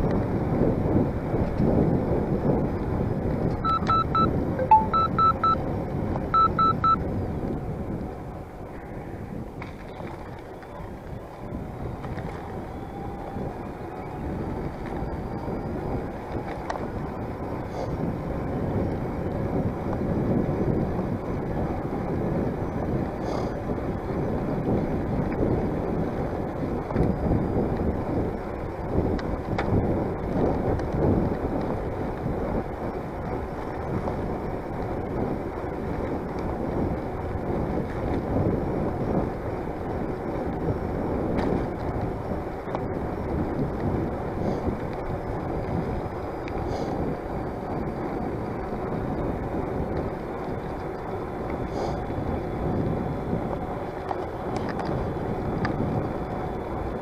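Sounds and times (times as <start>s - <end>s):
tyres rumbling on asphalt: 0.0s - 57.0s
wind buffeting microphone: 0.0s - 57.0s.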